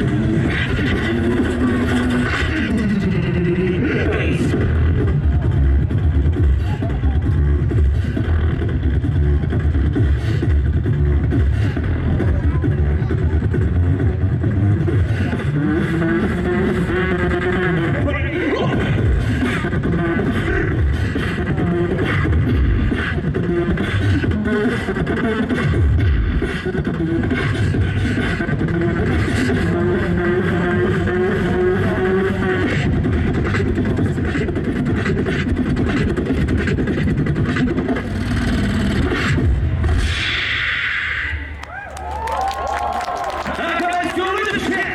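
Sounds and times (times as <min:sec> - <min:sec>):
beatboxing into a microphone: 0:00.0 - 0:41.6, 0:43.6 - 0:44.9.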